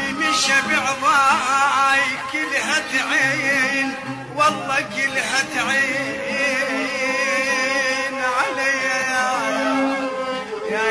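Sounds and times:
wavering chanted vocal: 0.0s - 10.9s.

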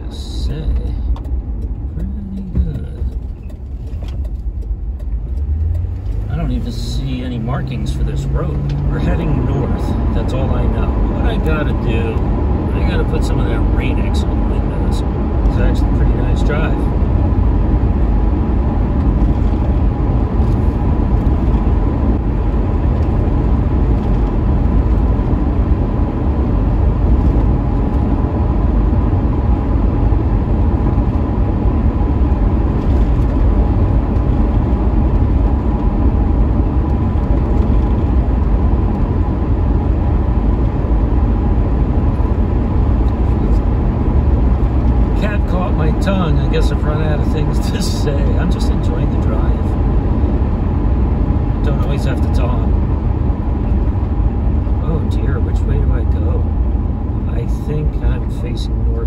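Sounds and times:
engine and tyres on wet road: 0.0s - 59.0s.

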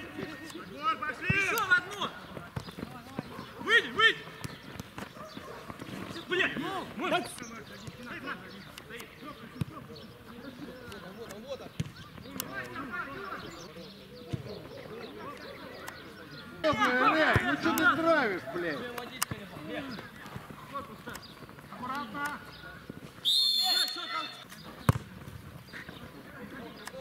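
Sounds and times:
players calling out: 0.0s - 27.0s.

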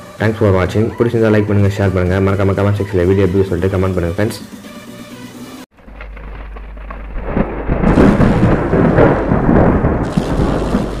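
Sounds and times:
thunder-like rumbling: 6.7s - 11.0s.

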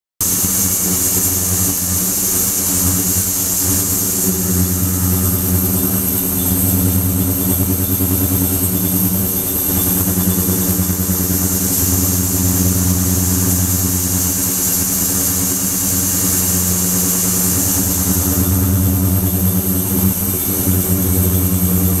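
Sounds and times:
ultrasonic cleaner buzzing hum: 0.2s - 22.0s.

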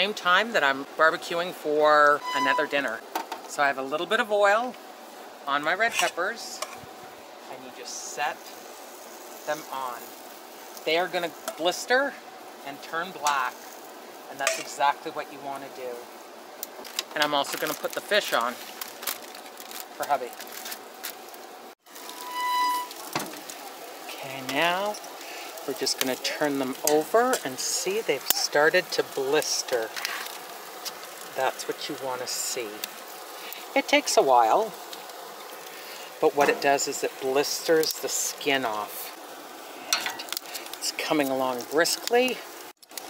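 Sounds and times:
peppers sizzling on a grill: 0.0s - 43.0s
steady low hiss: 0.0s - 43.0s.

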